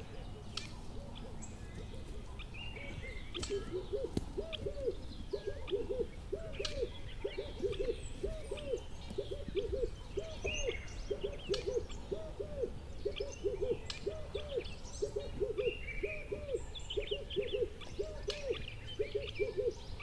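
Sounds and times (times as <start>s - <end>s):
low hooting calls: 0.0s - 20.0s.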